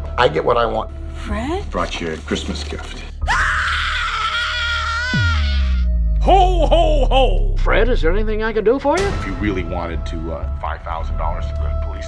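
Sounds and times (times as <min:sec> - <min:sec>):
high-pitched human scream: 0:03.3 - 0:05.9
low steady drone: 0:05.8 - 0:12.0.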